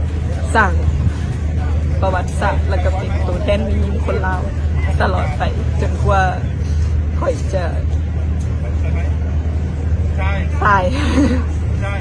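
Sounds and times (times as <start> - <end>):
low background rumble: 0.0 - 12.0
woman speaking: 2.0 - 6.5, 7.2 - 7.8, 10.6 - 11.1.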